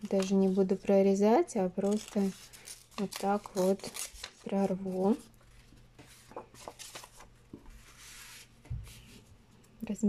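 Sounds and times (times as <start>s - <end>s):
paper rustling and sliding: 1.8s - 9.3s.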